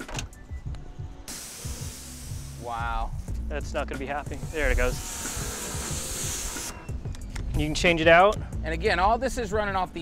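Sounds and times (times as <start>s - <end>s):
pressure washer water jet hissing: 1.3s - 3.4s, 4.3s - 6.8s.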